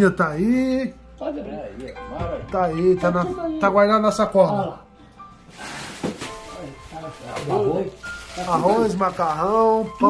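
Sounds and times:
soft background music: 0.0 - 10.0
plastic bag rustling: 5.4 - 10.0.

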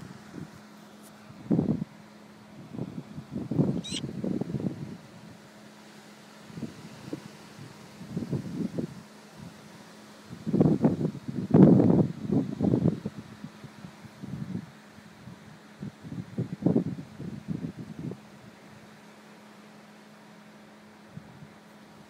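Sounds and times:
brief high chirp: 3.8 - 4.0.

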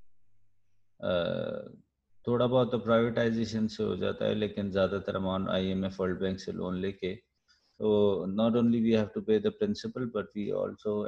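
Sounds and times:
man saying aah: 1.0 - 1.7.

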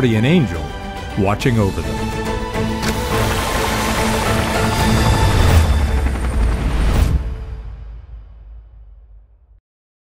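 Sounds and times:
music: 0.0 - 9.6
helicopter rotor chop: 1.9 - 7.7.

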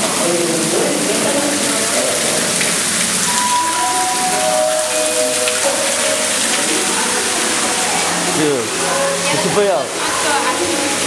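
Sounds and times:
water churning and splashing: 0.0 - 11.0.

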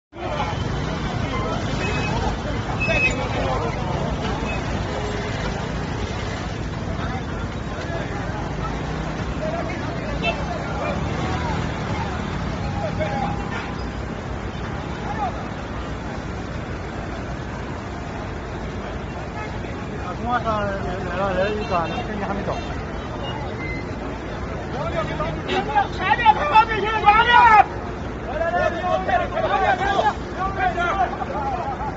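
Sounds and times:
steady traffic noise: 0.0 - 31.9
crowd voices talking: 0.1 - 31.9.

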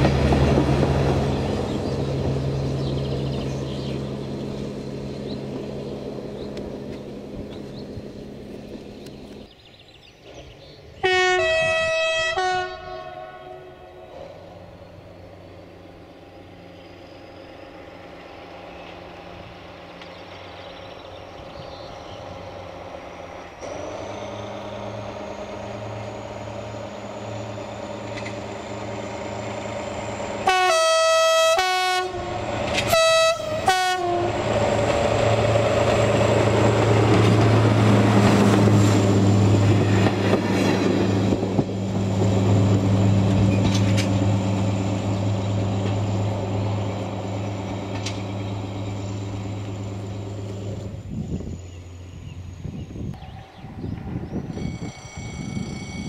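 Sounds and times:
diesel railcar engine: 0.0 - 56.0
train horn blasts: 11.0 - 14.1, 30.4 - 34.5.

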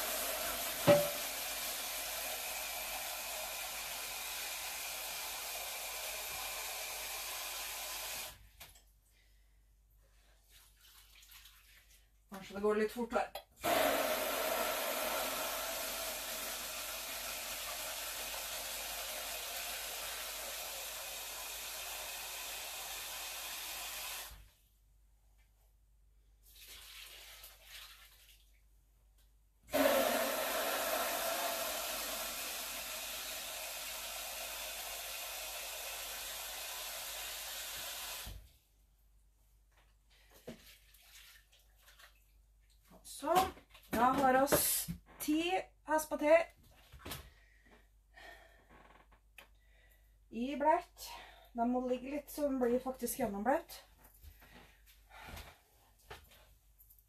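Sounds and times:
kitchen tap running water: 0.0 - 8.4, 13.6 - 24.5, 26.5 - 28.5, 29.7 - 38.5.

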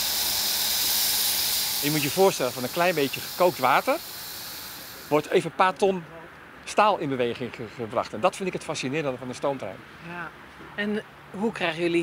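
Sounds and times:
steam locomotive hissing: 0.0 - 5.4.

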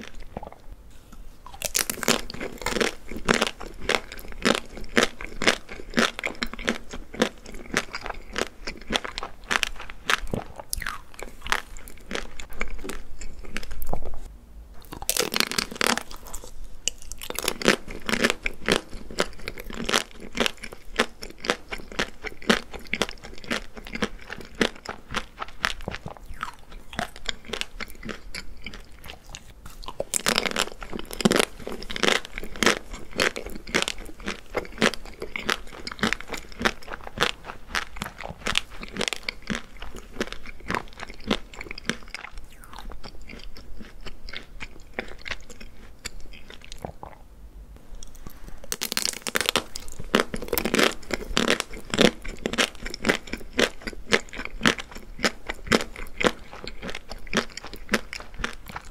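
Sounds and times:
crunching and chewing: 0.0 - 47.2, 48.0 - 58.9.

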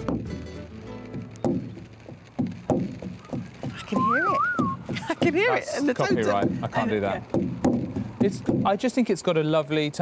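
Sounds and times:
frame drum struck by hand: 0.0 - 8.8.

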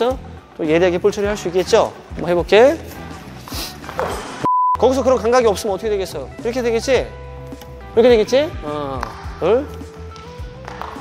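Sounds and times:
background music: 0.0 - 11.0
electronic beep: 4.4 - 4.9.

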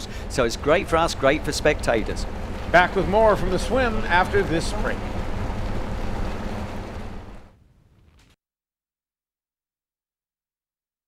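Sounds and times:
water rushing: 0.0 - 7.6
wind: 0.0 - 8.4.

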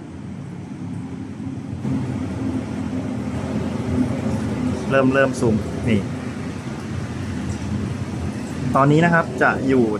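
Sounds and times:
low rumble of city traffic: 0.0 - 9.9.

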